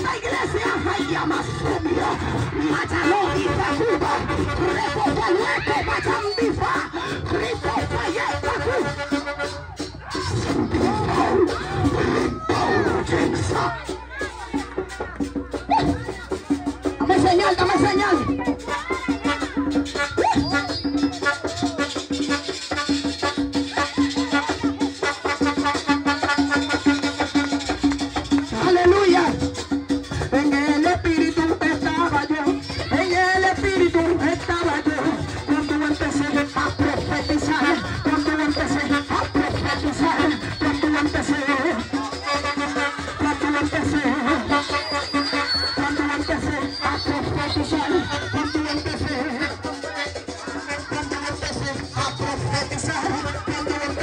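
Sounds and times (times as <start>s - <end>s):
worship music over loudspeakers: 0.0s - 14.0s, 27.6s - 54.0s
steady bass line: 0.0s - 20.4s
bass: 0.0s - 54.0s
percussion: 0.0s - 54.0s.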